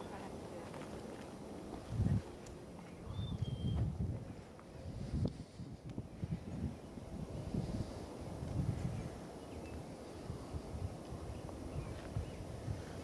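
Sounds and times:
wind buffeting microphone: 0:01.7 - 0:13.0.

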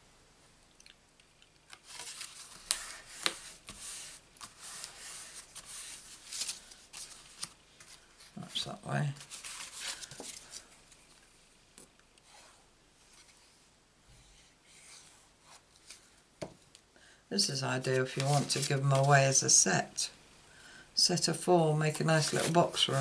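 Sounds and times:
paper cards rustling and scraping: 0:01.7 - 0:11.2, 0:17.9 - 0:19.6, 0:21.9 - 0:23.0.

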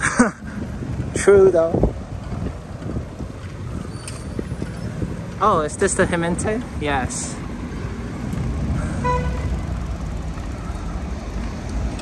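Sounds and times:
wind buffeting microphone: 0:00.0 - 0:08.9
tyre and street noise: 0:00.0 - 0:12.0.

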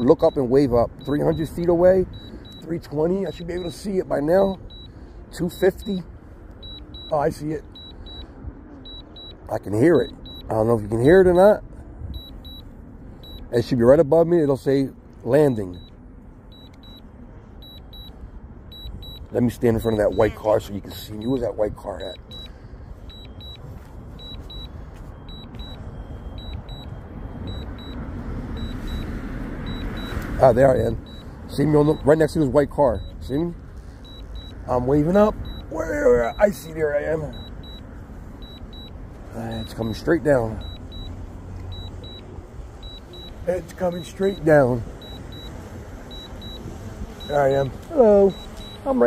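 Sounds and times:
short high double beeps: 0:00.0 - 0:02.9, 0:04.6 - 0:10.6, 0:12.1 - 0:13.5, 0:15.5 - 0:20.6, 0:22.0 - 0:30.2, 0:30.8 - 0:32.2, 0:34.0 - 0:49.0.

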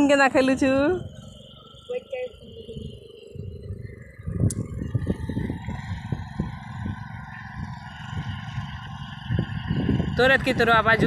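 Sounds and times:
tractor engine rumbling: 0:00.0 - 0:11.0.

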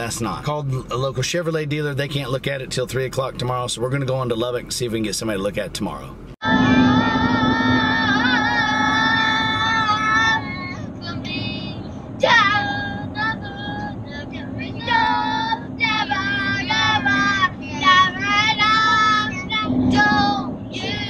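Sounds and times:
engine and road hum: 0:00.0 - 0:21.0.

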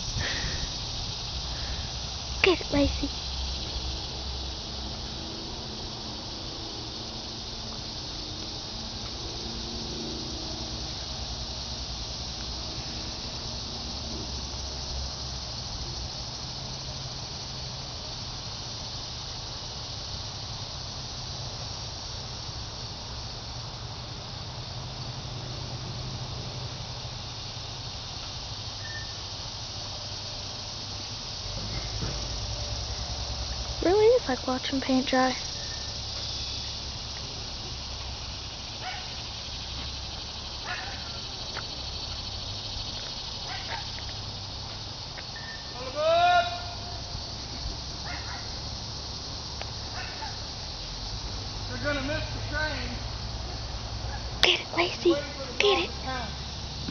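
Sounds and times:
insects chirring: 0:00.0 - 0:56.9.

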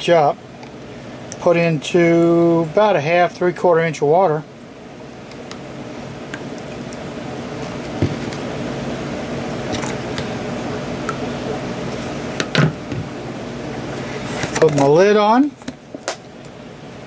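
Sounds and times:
steady machine hum: 0:00.0 - 0:17.0.

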